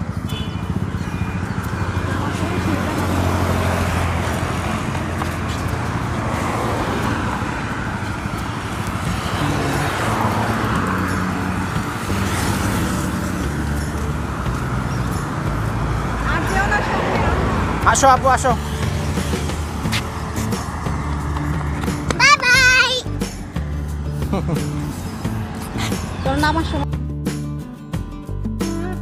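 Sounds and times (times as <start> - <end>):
tyre noise: 0.0 - 17.9, 18.6 - 22.8
road traffic hum: 0.0 - 29.0.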